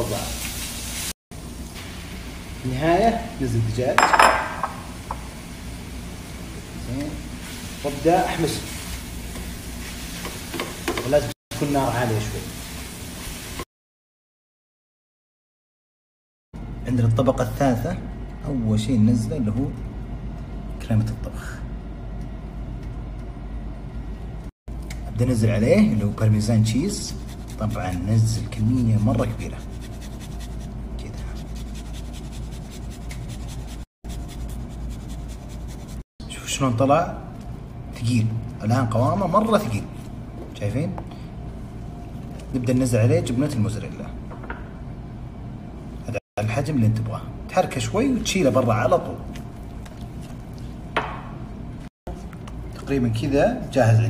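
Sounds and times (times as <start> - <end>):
kitchenware clattering on pan: 4.0 - 5.2
steady low hum: 16.6 - 54.0.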